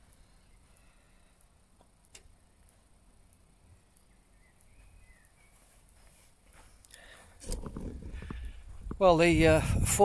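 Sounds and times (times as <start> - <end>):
camera handling rumble: 7.4 - 9.0.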